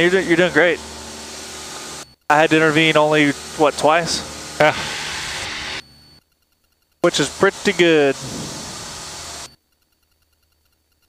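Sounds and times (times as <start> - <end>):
speech: 0.0 - 0.8, 2.3 - 4.8, 7.0 - 8.2
low hum: 0.0 - 6.2.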